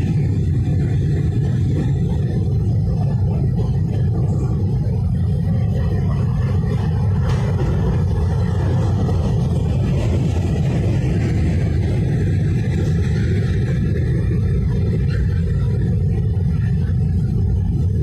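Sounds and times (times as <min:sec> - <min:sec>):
freight cars rolling over bridge: 0:00.0 - 0:18.0.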